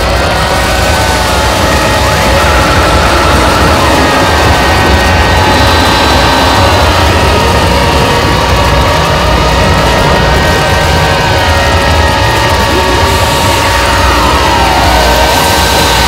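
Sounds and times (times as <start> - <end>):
harsh noise wall: 0.0 - 16.0
heavy low rumble: 0.0 - 16.0
sustained electronic tones: 0.0 - 16.0.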